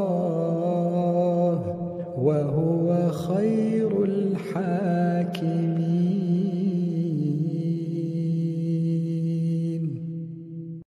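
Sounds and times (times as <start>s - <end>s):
person reciting in long held note: 0.0s - 10.6s.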